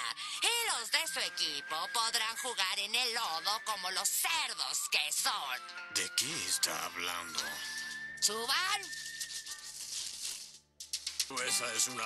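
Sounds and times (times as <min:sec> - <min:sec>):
cartoon background music: 0:00.0 - 0:10.1, 0:11.3 - 0:12.0.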